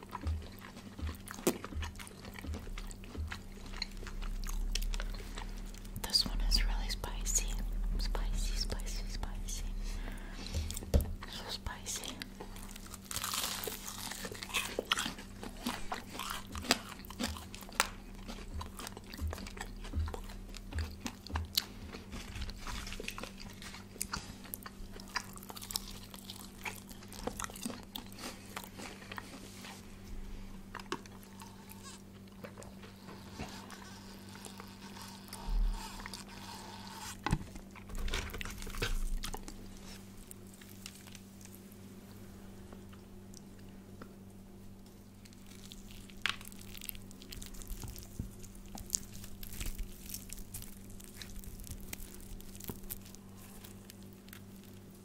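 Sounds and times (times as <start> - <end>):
chewing crispy fried chicken: 0.0 - 6.4, 10.1 - 41.9, 42.7 - 55.0.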